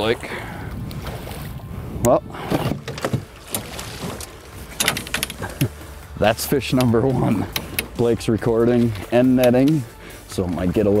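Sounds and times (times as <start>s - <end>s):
short breaths: 9.9s - 10.3s.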